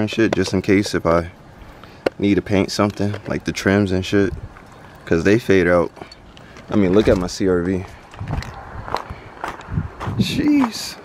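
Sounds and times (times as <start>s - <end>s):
footsteps on gravel: 4.3s - 11.0s.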